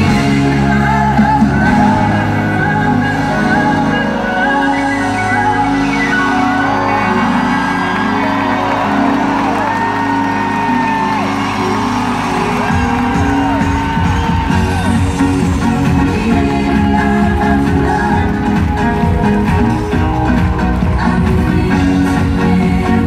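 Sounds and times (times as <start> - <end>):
live pop concert music: 0.0 - 23.0
audience whooping: 5.4 - 15.9
pounding bass beat: 12.0 - 23.0.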